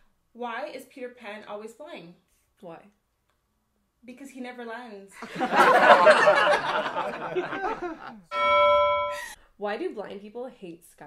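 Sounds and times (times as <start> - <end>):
women laughing: 5.2 - 8.2
bell ding sound effect: 8.3 - 9.4.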